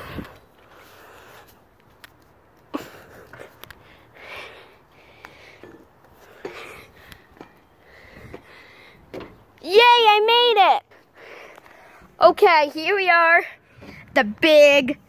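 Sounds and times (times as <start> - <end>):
hands and feet on metal rungs: 0.0 - 10.8
soft breathing: 2.8 - 9.1, 10.9 - 12.2.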